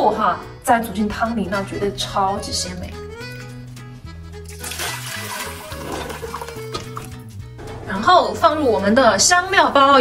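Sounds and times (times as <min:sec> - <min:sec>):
background music with bass line: 0:00.0 - 0:10.0
water pouring into pot: 0:04.4 - 0:07.2.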